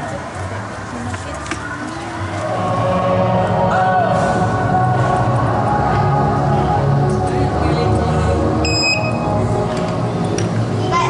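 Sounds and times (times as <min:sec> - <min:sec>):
background music: 0:01.9 - 0:11.0
short high electronic beep: 0:08.6 - 0:09.3.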